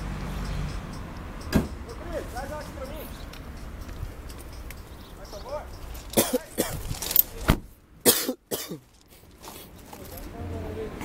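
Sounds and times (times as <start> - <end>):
person coughing: 6.2 - 6.9, 8.1 - 8.8.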